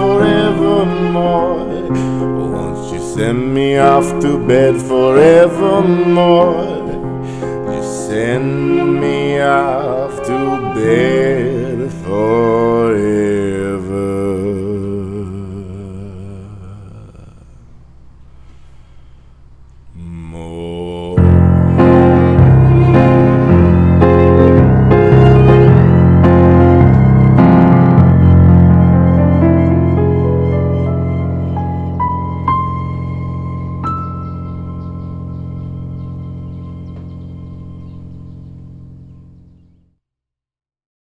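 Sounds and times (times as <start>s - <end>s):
keyboard chord: 0.0s - 13.4s, 21.2s - 39.8s
bowed cello low notes: 0.0s - 39.8s
piano low notes: 0.0s - 39.8s.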